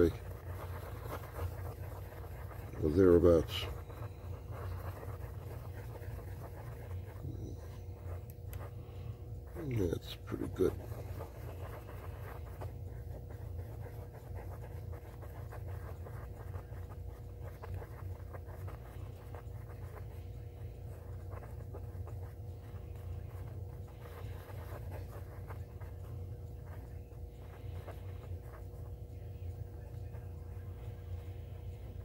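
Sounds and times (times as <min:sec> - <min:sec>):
stick scraping epoxy on cardboard: 0:00.0 - 0:08.9
steady low hum: 0:00.0 - 0:32.0.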